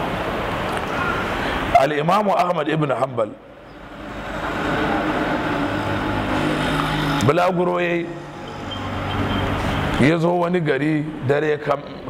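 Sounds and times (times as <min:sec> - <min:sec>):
engine drone: 0:03.4 - 0:11.2.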